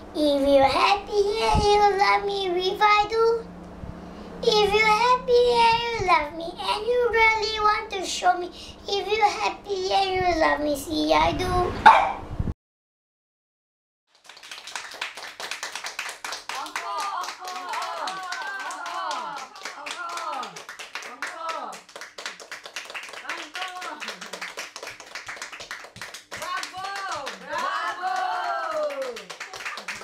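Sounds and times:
quick sharp claps and taps: 14.2s - 30.0s.

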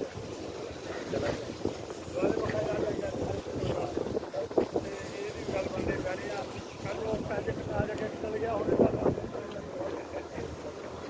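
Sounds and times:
people talking: 0.0s - 11.0s
wind rumbling on microphone: 0.0s - 11.0s.

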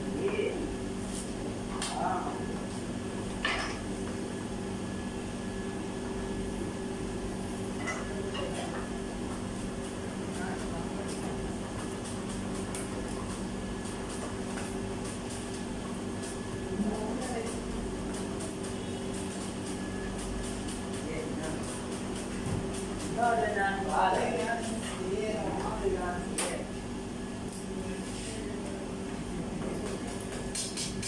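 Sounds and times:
kitchen equipment humming: 0.0s - 31.0s.

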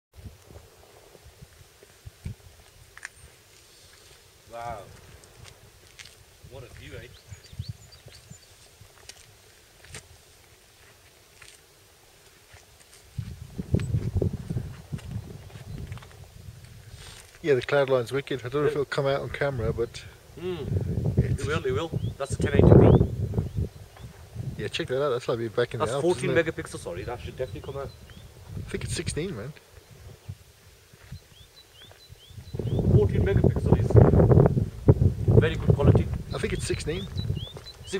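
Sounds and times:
rumbling buffeting on microphone: 0.1s - 11.2s, 12.4s - 17.7s, 19.3s - 24.8s, 26.0s - 31.4s, 32.0s - 37.9s
small bird chirping: 6.8s - 8.7s, 21.5s - 24.2s, 26.8s - 28.4s, 31.0s - 33.1s, 36.3s - 37.9s.

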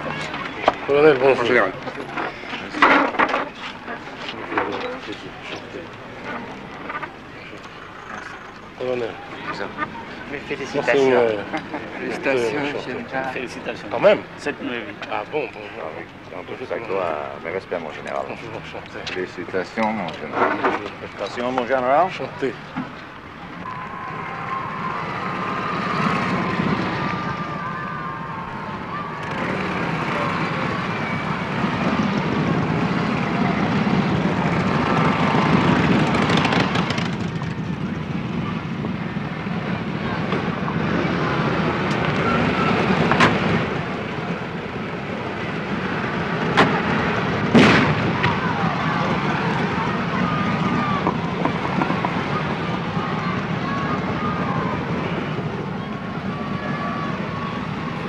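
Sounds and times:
indistinct crowd voices: 0.0s - 58.0s
motorcycle and car engines running: 0.0s - 58.0s.

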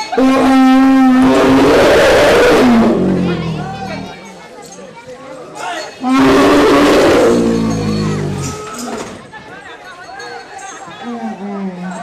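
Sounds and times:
elephant trumpeting and roaring: 0.1s - 4.2s, 6.0s - 8.7s.

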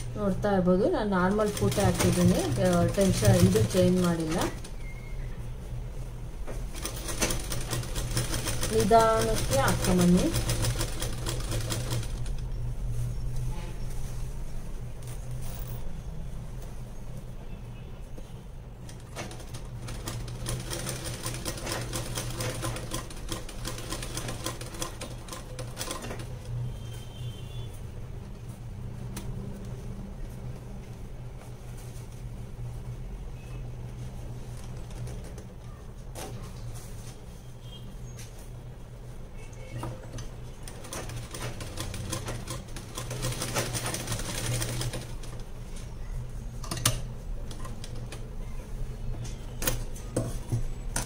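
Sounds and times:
sewing machine stitching: 1.2s - 4.7s, 6.7s - 12.4s, 19.0s - 26.4s, 40.0s - 45.4s.

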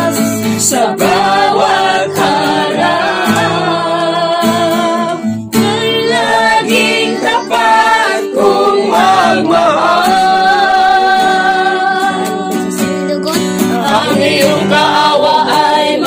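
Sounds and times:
acoustic guitar: 0.0s - 16.0s
people singing: 0.0s - 16.0s.

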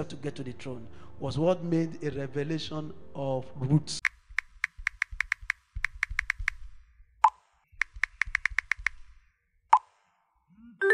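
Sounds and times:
quick sharp clicks: 4.0s - 10.0s.

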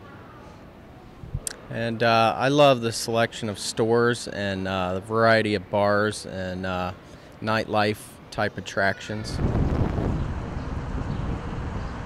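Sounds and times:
low outdoor rumble: 9.2s - 12.0s.

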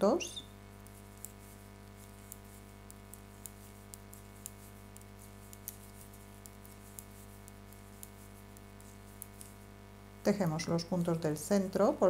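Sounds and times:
steady low hum: 0.0s - 12.0s
knitting needles clicking: 0.8s - 9.5s.

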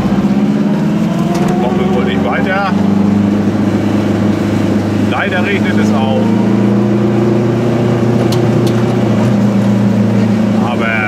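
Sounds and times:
two-stroke car engine running: 0.0s - 11.0s.

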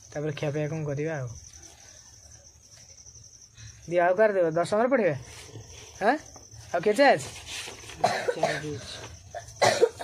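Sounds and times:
person coughing: 8.0s - 10.0s.

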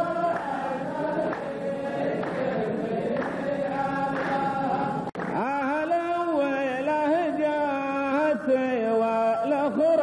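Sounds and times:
men chanting in unison: 0.0s - 10.0s
handclaps: 0.3s - 0.6s, 1.3s - 5.8s.

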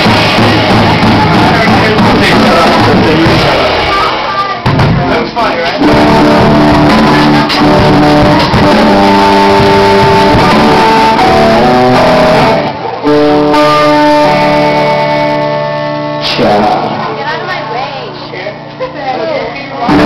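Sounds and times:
rock band playing live: 0.0s - 17.6s
electric guitars ringing chords: 0.0s - 18.7s, 19.7s - 20.0s.

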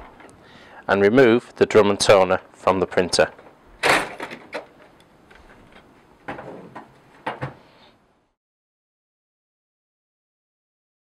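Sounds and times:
plastic knocks and scrapes: 5.4s - 7.6s.

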